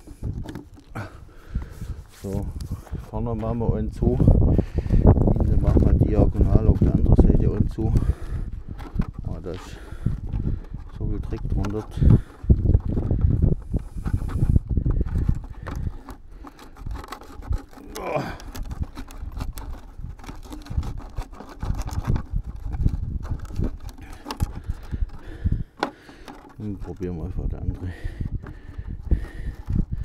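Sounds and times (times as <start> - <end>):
handling clicks and knocks: 0.0 - 4.1, 4.8 - 30.0.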